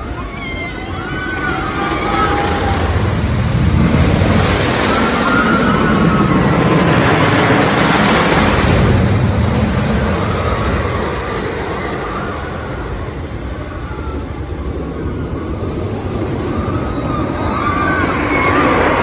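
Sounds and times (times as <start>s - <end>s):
roller coaster rumbling on wooden track: 0.0s - 19.0s.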